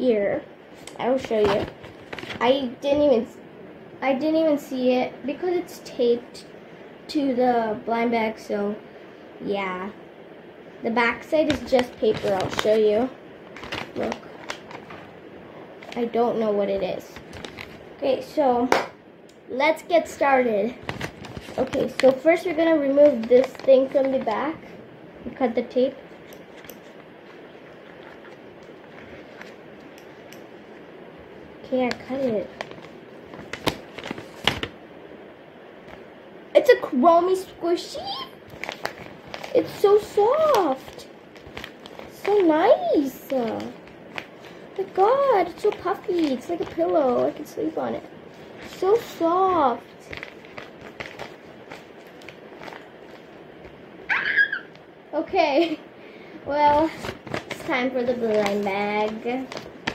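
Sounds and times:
faint room hiss: 0:00.0 - 0:59.9
plastic bag rustling: 0:00.7 - 0:02.5, 0:11.2 - 0:15.2, 0:15.8 - 0:18.0, 0:20.7 - 0:24.8, 0:26.0 - 0:30.8, 0:31.6 - 0:34.8, 0:37.8 - 0:53.8, 0:56.4 - 0:59.9
paper handling: 0:00.8 - 0:02.4, 0:11.4 - 0:15.1, 0:16.8 - 0:17.9, 0:20.7 - 0:24.6, 0:26.1 - 0:30.4, 0:31.7 - 0:34.8, 0:38.5 - 0:53.8, 0:56.6 - 0:59.9
high-pitched squeal falling: 0:54.1 - 0:54.7.

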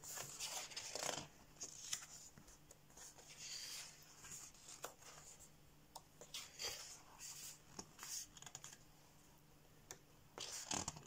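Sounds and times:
paper pages turning: 0:00.0 - 0:05.4.

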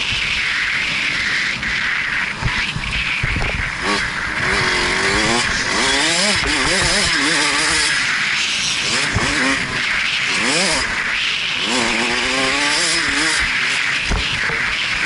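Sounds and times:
dirt bike engine revving: 0:00.0 - 0:15.0
wind rushing: 0:00.0 - 0:15.0.

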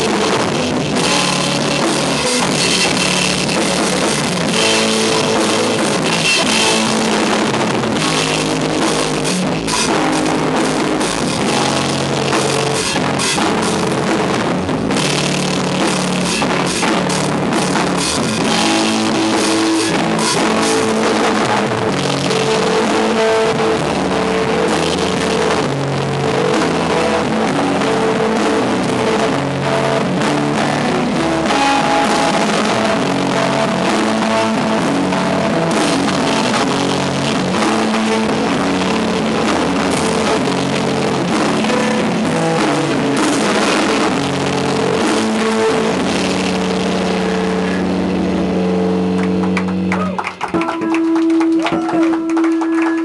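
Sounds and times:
drums and cymbals: 0:00.0 - 0:47.8
distorted electric guitars: 0:00.0 - 0:53.0
rock band playing loud chords: 0:00.0 - 0:53.0.

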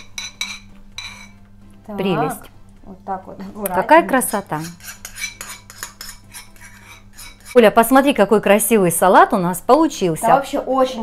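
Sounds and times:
spoon scraping a bowl: 0:00.0 - 0:01.4, 0:04.2 - 0:07.7.

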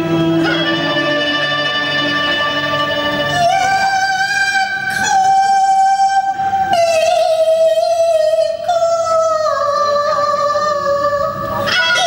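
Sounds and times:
woman singing opera style: 0:03.2 - 0:12.0.

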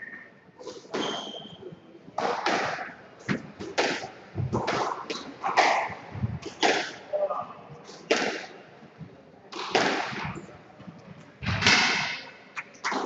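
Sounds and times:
ball smacking court walls: 0:02.2 - 0:07.0
squash ball hit by rackets: 0:02.2 - 0:07.0, 0:08.1 - 0:08.5, 0:09.5 - 0:10.3, 0:11.5 - 0:13.0.

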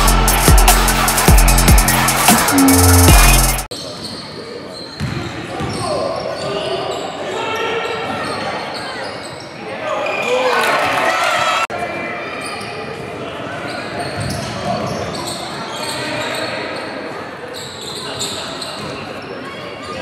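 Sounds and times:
players calling out: 0:00.0 - 0:03.7
sneakers squeaking: 0:02.3 - 0:07.2, 0:07.8 - 0:10.2, 0:13.7 - 0:16.8, 0:17.5 - 0:19.0.

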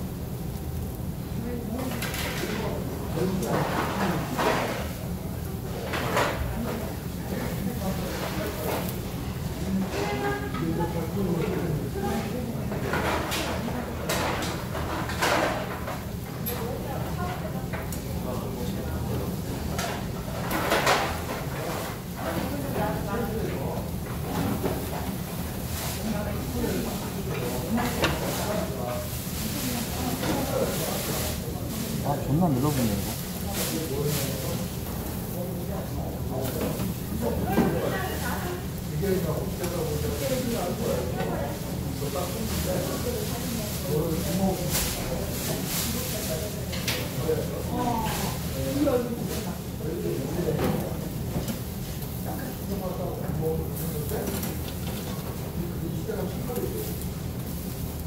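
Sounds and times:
low voices talking: 0:16.6 - 0:51.3.

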